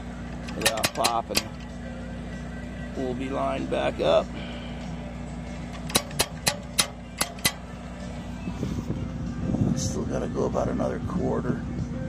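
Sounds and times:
steady low hum: 0:00.0 - 0:12.0
chain hoist ratcheting clicks: 0:00.4 - 0:01.6, 0:05.8 - 0:07.6.

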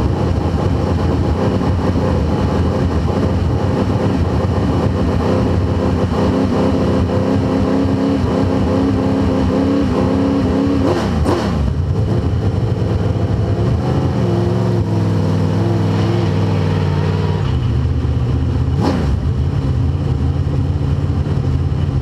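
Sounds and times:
race car engine revving: 0:00.0 - 0:22.0.

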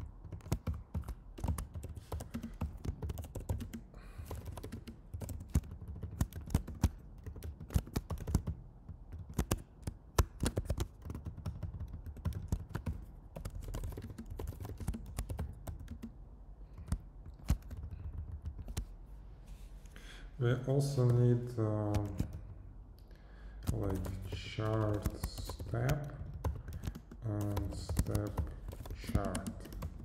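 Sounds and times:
typing on computer keyboard: 0:00.0 - 0:18.9, 0:21.8 - 0:22.6, 0:23.6 - 0:30.0.

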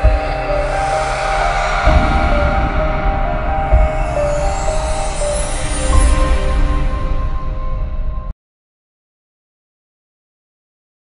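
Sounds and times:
deep bass hits: 0:00.0 - 0:08.2
rising noise swell: 0:00.0 - 0:08.2
sustained electronic notes: 0:00.0 - 0:08.3
synthesized intro music: 0:00.0 - 0:08.3.

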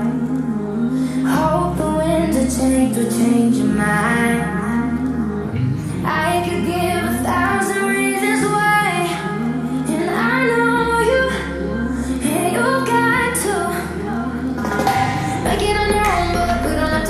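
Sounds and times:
bass and synth chords: 0:00.0 - 0:17.0
woman singing pop song: 0:00.0 - 0:17.0.

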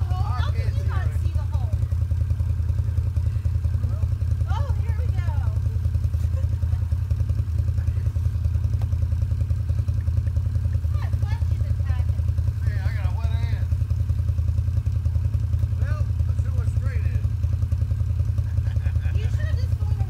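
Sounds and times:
utility vehicle engine idling: 0:00.0 - 0:20.0.

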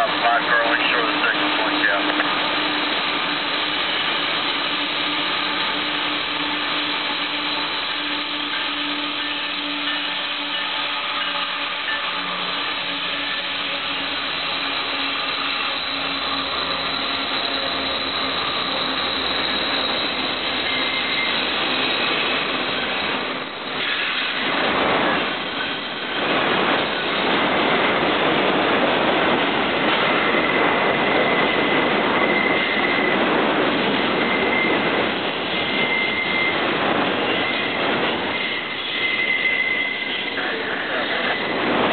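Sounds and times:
high wheel squeal: 0:00.0 - 0:27.2, 0:30.2 - 0:33.2, 0:34.1 - 0:41.6
diesel locomotive engines: 0:00.0 - 0:41.9
train wheels on rails: 0:00.0 - 0:41.9.

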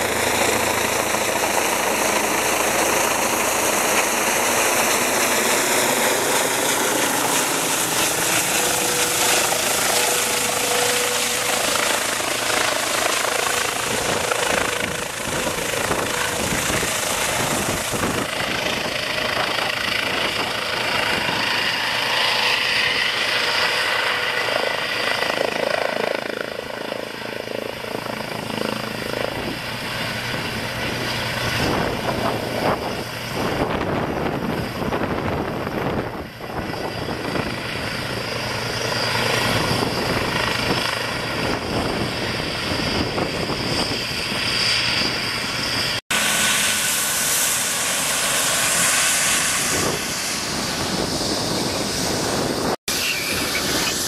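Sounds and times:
helicopter turbine and rotor: 0:00.0 - 0:54.0
rotor wash buffeting microphone: 0:45.7 - 0:54.0.

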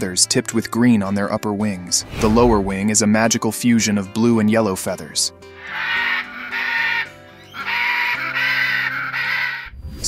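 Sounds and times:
background music with low notes: 0:00.0 - 0:10.0
macaw squawking: 0:05.6 - 0:09.7.

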